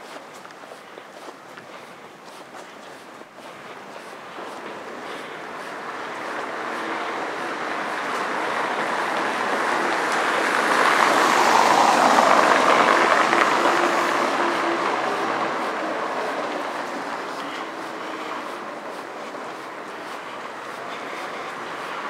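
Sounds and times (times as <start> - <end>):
car tyres on stone paving: 0.0 - 22.0.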